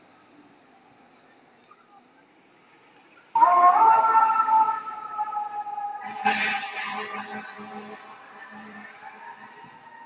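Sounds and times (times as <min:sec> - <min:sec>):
fire engine siren: 0:03.4 - 0:10.0.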